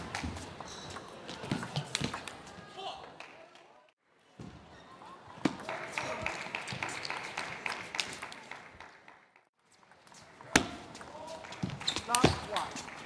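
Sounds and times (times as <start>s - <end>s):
shoes squeaking on floor: 11.8s - 12.5s.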